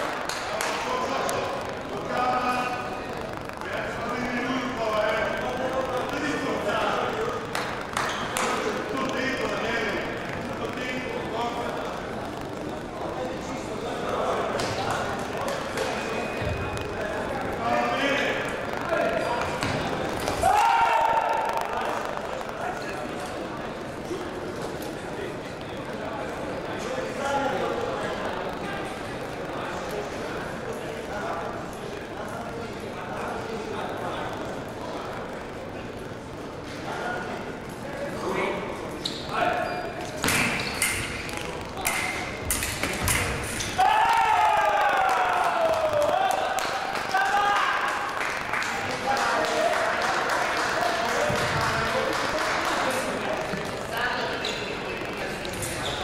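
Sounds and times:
background chatter: 0.0 - 56.0.

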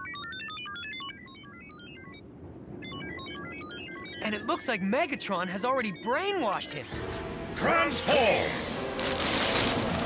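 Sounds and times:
robots chattering in electronic beeps: 2.8 - 7.2.

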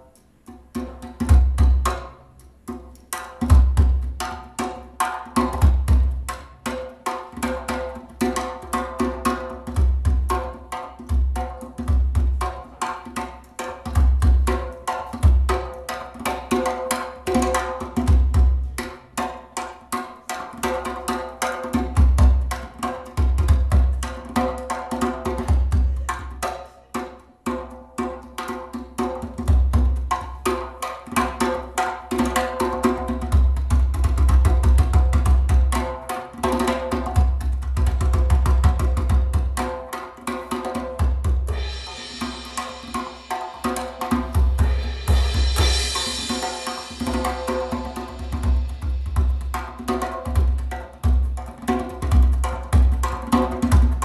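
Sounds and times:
fast drum kit: 29.0 - 54.0
bright cymbal wash: 41.5 - 49.8.

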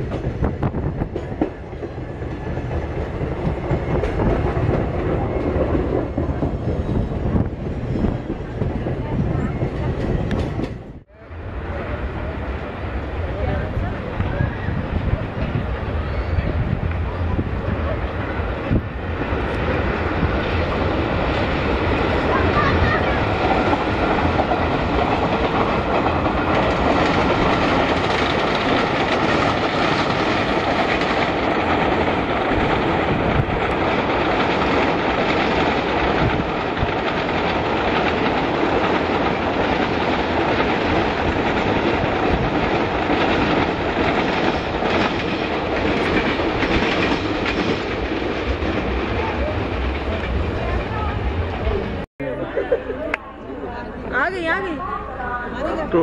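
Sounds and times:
train wheels on rails: 0.0 - 52.1.

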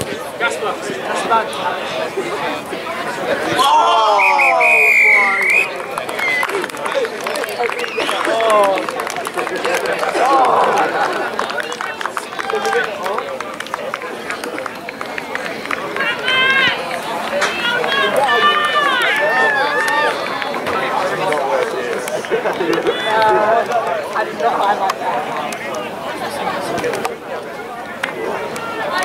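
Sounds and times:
players and spectators shouting: 0.0 - 29.0.

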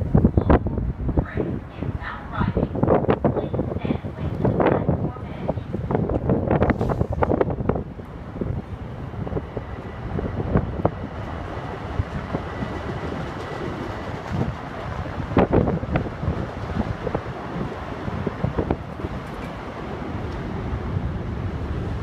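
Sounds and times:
electric train rumbling: 0.0 - 22.0
wind buffeting microphone: 0.0 - 22.0
train clanks: 9.3 - 20.6.

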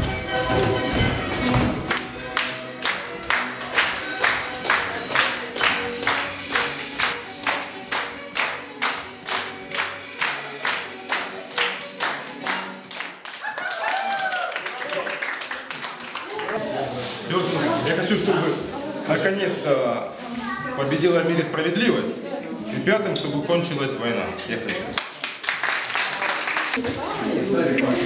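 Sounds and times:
dance music: 0.0 - 12.9
people clapping in unison: 1.5 - 16.9, 24.9 - 26.8.

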